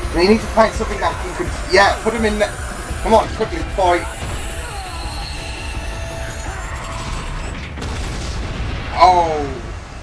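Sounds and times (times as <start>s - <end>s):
tense background music: 0.0s - 10.0s.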